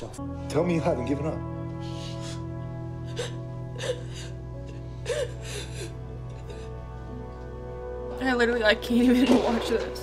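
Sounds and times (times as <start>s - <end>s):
soft background score: 0.0s - 10.0s
woman crying: 1.9s - 6.8s.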